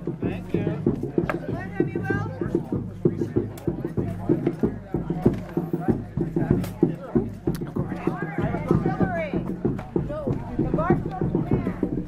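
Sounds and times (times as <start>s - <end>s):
fast steady drumming: 0.0s - 12.0s
people talking: 0.0s - 12.0s.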